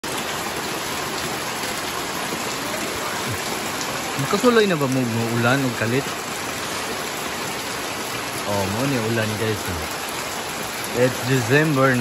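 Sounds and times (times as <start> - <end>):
heavy rain: 0.0 - 12.0.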